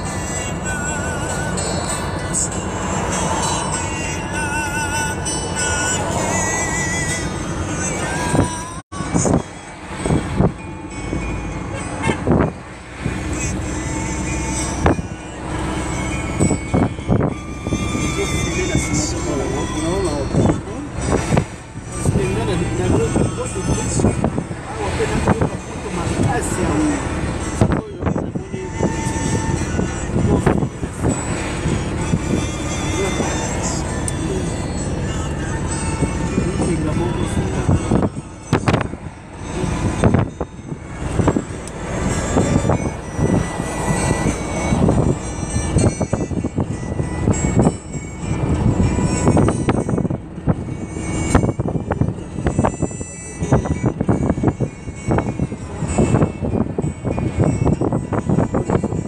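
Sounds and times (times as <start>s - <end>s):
car road noise: 0.0s - 59.0s
music in car: 0.0s - 59.0s
voices in car: 11.6s - 59.0s.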